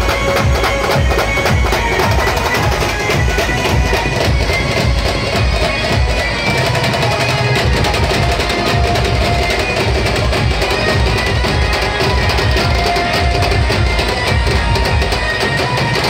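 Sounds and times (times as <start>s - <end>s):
live band music: 0.0s - 16.0s
pounding drum beat: 0.0s - 16.0s.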